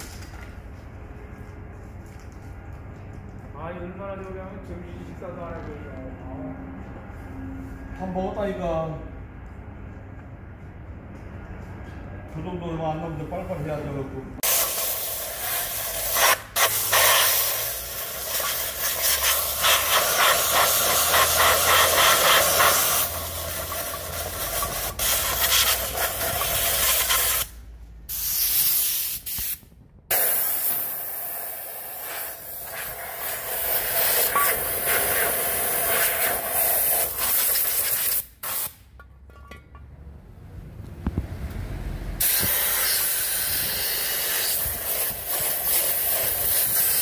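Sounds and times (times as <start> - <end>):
loud hissing air jet: 14.4 - 27.5, 28.1 - 38.8, 42.2 - 47.0.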